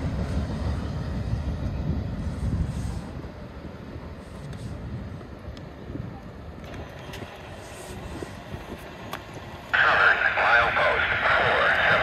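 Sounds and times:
faint outdoor background: 0.0 - 12.0
crackly scanner radio transmission: 9.5 - 12.0.

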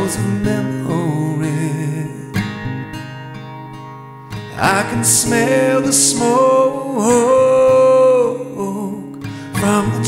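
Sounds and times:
guitar chord strummed and ringing: 0.0 - 10.0.

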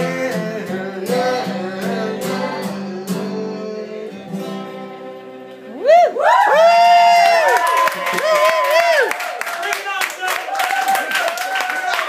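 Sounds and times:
audience cheering and whooping: 5.7 - 12.0.

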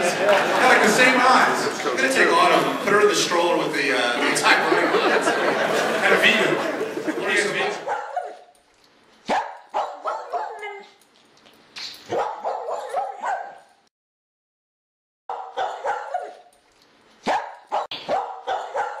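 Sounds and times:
dog barking and yipping: 7.8 - 8.6, 9.2 - 11.0, 12.0 - 13.8, 15.3 - 16.5, 17.2 - 19.0.

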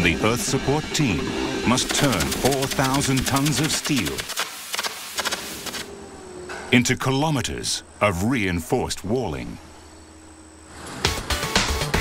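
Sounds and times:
welding crackling: 1.8 - 5.9.

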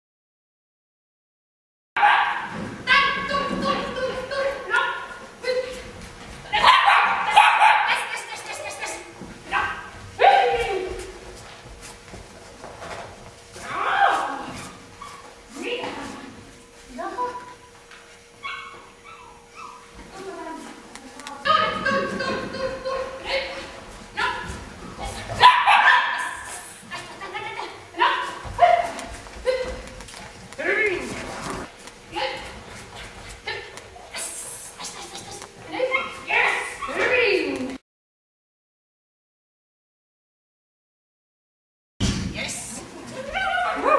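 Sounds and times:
dog barking rapidly: 2.0 - 2.5, 6.6 - 8.3, 25.4 - 26.4.

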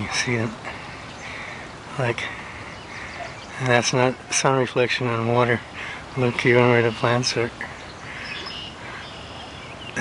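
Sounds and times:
faint bird chirps: 2.5 - 4.4, 6.8 - 10.0.

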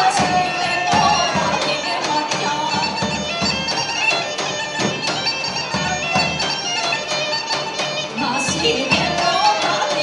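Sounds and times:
large drum beats: 0.0 - 10.0
sustained folk melody instrument: 0.0 - 10.0.

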